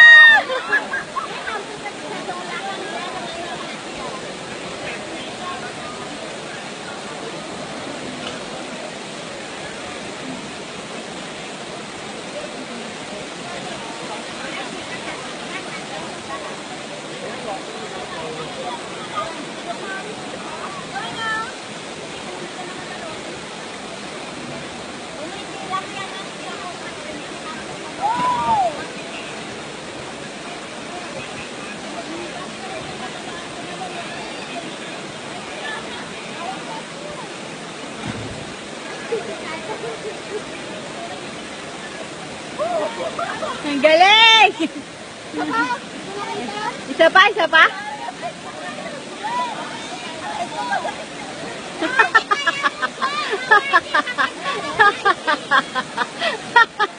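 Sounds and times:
faint voices: 0.0 - 56.9
waterfall rushing into pool: 0.0 - 56.9.

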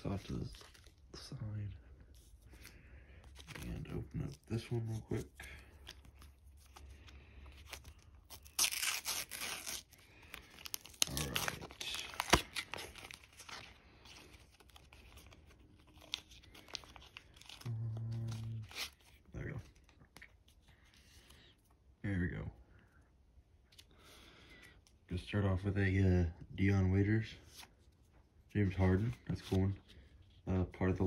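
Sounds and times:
paper crinkling: 2.0 - 21.0
paper wrapper tearing: 5.6 - 19.2.

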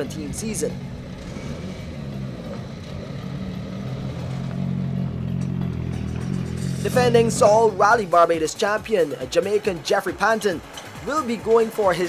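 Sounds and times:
car engine idling: 0.0 - 9.8.

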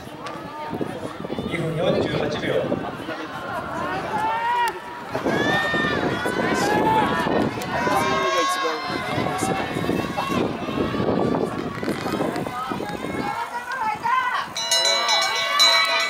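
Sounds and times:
crowd noise: 0.0 - 16.0
people shouting encouragement: 2.5 - 16.0.

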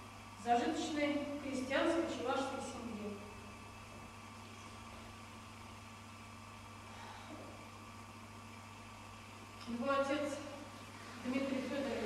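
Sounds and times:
low electrical hum and hiss: 0.0 - 12.0.

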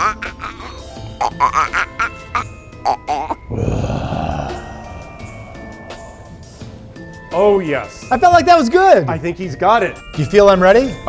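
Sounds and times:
eerie background music: 0.0 - 8.6
man squealing and grunting: 3.4 - 6.6.

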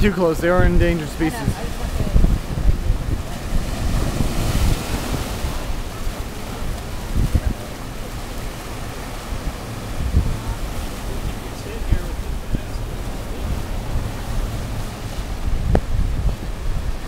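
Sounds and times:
surf washing over rocks: 0.0 - 17.0
wind buffeting microphone: 0.0 - 17.0.

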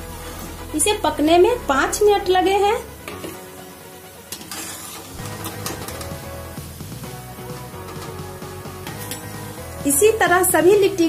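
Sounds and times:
background music with bass: 0.0 - 4.0, 5.1 - 11.0
hot oil sizzling: 0.0 - 11.0.

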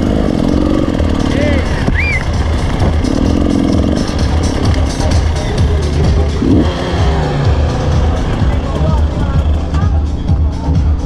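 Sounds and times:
motorcycle engine at low revs: 0.0 - 11.0
music: 0.0 - 11.0.

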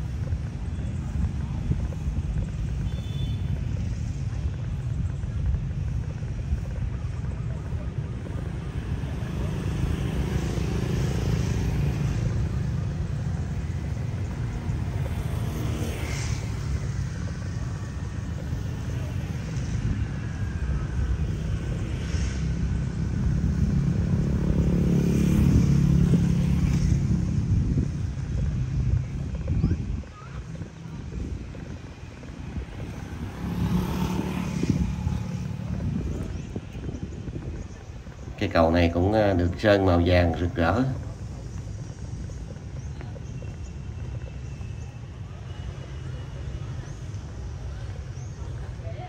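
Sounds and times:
faint voices: 0.0 - 23.0, 27.6 - 49.0
low choppy rumble: 0.0 - 45.1.

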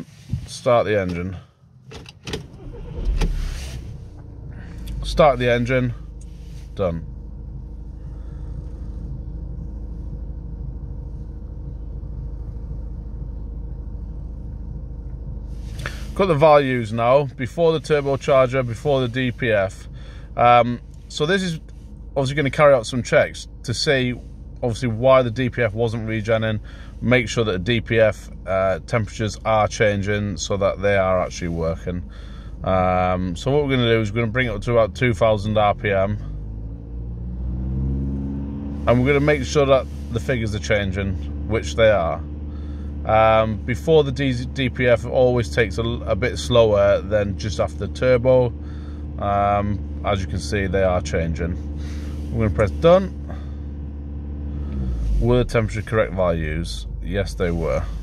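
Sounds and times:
diesel engine idling: 0.0 - 58.0.

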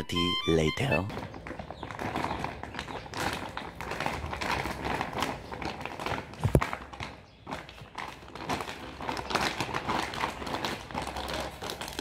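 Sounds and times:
paper bag crinkling: 0.8 - 12.0.

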